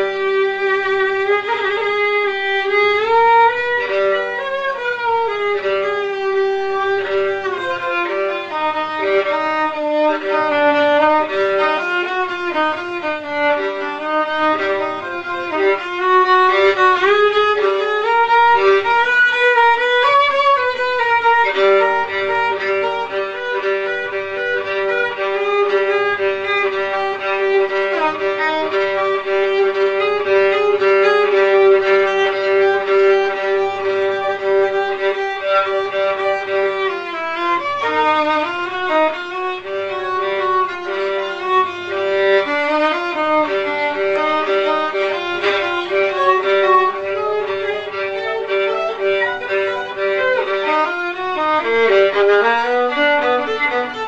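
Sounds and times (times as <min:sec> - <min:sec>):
solo violin melody: 0:00.0 - 0:54.0.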